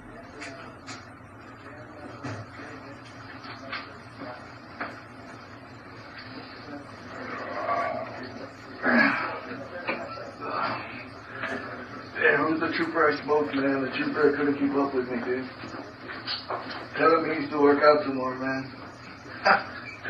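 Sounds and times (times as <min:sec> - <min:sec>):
room hiss: 0:04.0 - 0:20.0.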